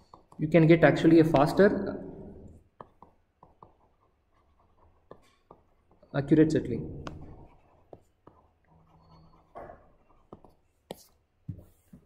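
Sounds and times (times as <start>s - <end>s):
stylus writing on a tablet: 0.0s - 12.0s.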